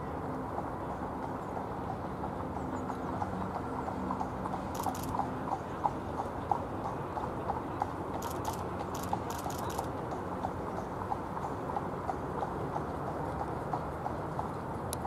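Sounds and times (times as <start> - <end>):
sharp clicks: 4.7 - 5.2, 8.2 - 9.9.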